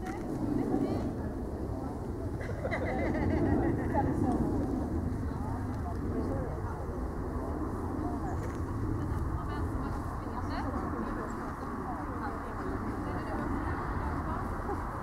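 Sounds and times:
faint indistinct voices: 0:00.0 - 0:15.0
steady low rumble: 0:00.0 - 0:15.0.

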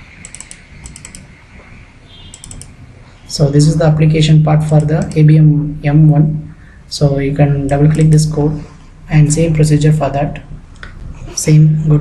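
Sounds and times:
computer mouse clicks: 0:00.2 - 0:01.7, 0:02.3 - 0:02.8.

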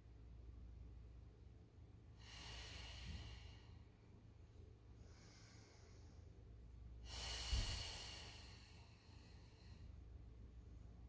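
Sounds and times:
low room hum: 0:00.0 - 0:11.0
person exhaling: 0:02.2 - 0:03.8, 0:07.0 - 0:09.9.

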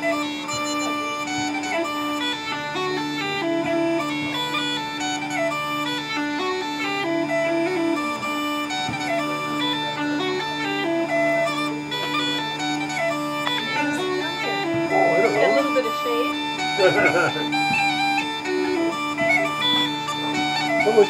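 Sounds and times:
bagpipes playing: 0:00.0 - 0:21.0.

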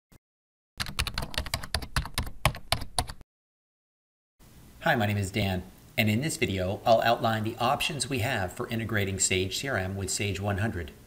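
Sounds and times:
computer keyboard typing: 0:00.8 - 0:03.2.

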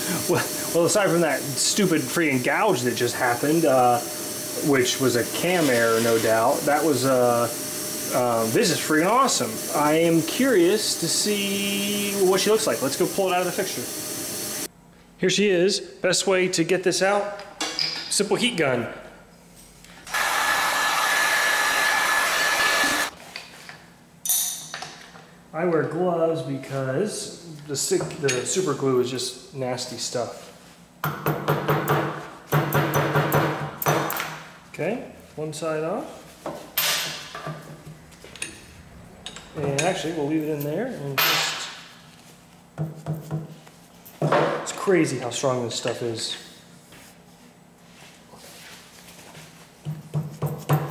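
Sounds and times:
heat gun blowing with whine: 0:20.0 - 0:23.2.

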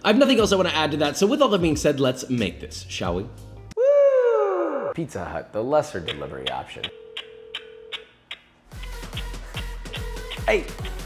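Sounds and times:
light ticking beat: 0:06.0 - 0:11.0
phone ringing tone: 0:06.8 - 0:08.2.

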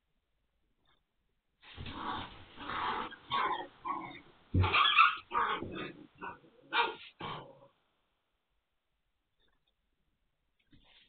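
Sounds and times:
puppies growling and yipping: 0:01.7 - 0:07.3.

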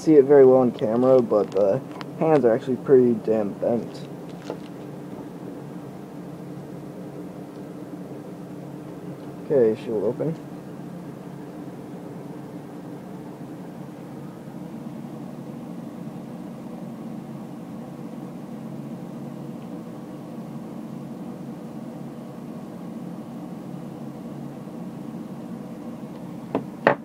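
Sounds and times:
low hum with hiss: 0:00.0 - 0:27.0.

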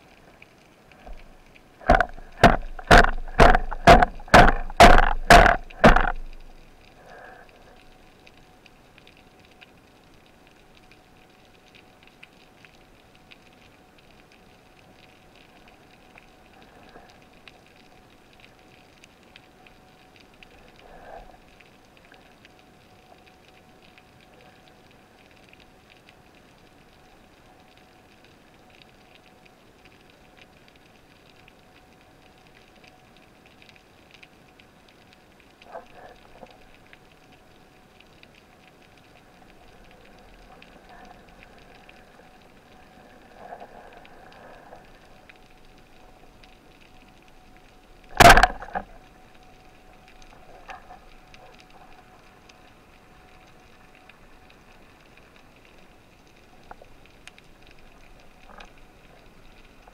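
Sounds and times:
crackle of tiny underwater clicks: 0:00.0 - 0:59.9
faint steady hum: 0:00.0 - 0:59.9.

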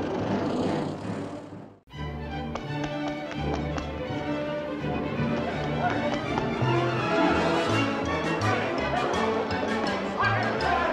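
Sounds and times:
old car engine rumbling: 0:00.0 - 0:01.8.

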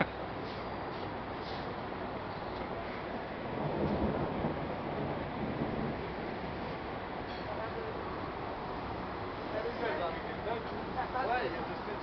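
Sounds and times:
steady background noise: 0:00.0 - 0:12.0
rolling thunder rumble: 0:02.0 - 0:10.5.

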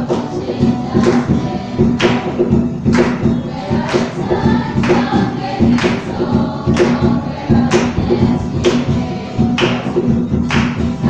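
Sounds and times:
girls singing in chorus: 0:00.0 - 0:11.0
sharp beat: 0:00.0 - 0:11.0.

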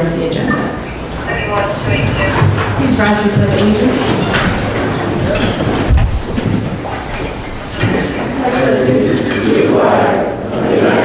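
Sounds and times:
creaking wooden seats: 0:00.5 - 0:09.4.

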